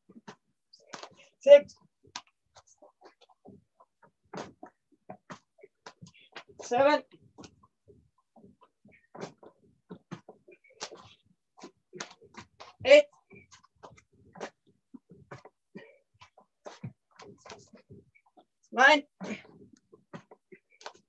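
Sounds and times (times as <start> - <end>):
man calling out counts: 1.4 - 1.7, 12.8 - 13.1, 18.7 - 19.1.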